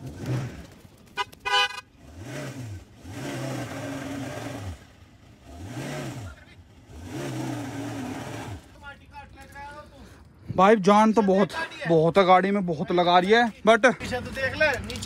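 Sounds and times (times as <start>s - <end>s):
diesel engine revving: 0.0s - 0.8s, 1.9s - 8.8s.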